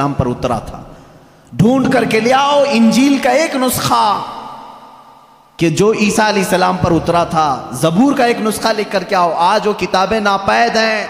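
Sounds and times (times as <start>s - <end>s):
man's amplified speech with echo: 0.0s - 11.0s.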